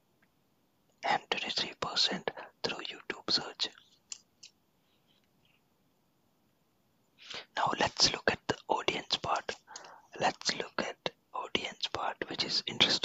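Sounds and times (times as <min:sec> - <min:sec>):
person whispering: 0:01.0 - 0:03.9, 0:07.3 - 0:13.0.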